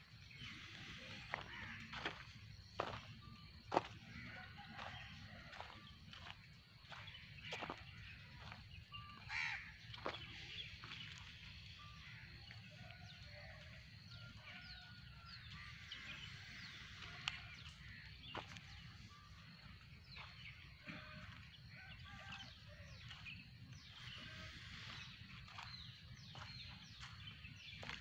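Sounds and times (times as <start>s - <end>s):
birds chirping: 0.0s - 28.0s.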